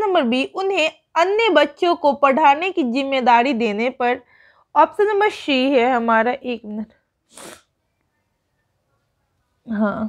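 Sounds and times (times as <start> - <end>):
sharp sniff through the nose: 7.2 - 7.8.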